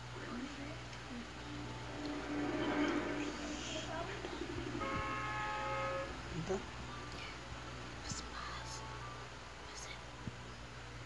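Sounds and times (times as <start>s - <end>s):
vehicle horn: 4.7s - 6.2s.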